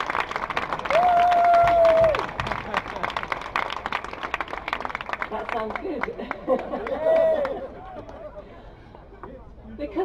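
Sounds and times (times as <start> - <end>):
crowd applauding: 0.0 - 8.2.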